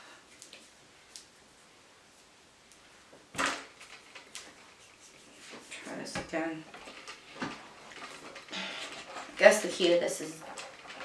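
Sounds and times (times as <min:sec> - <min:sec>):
person speaking: 0:05.5 - 0:06.8, 0:08.6 - 0:10.5.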